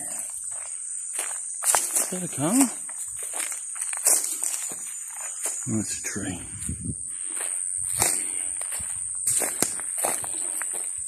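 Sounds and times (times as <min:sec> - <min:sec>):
footsteps on leaves and gravel: 0:00.0 - 0:11.0.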